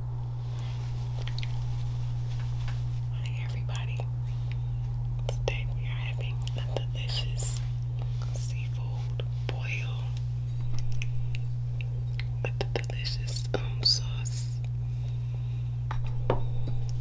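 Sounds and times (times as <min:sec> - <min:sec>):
steady low hum: 0:00.0 - 0:17.0
woman whispering: 0:03.1 - 0:04.2, 0:05.2 - 0:10.2, 0:12.4 - 0:14.6.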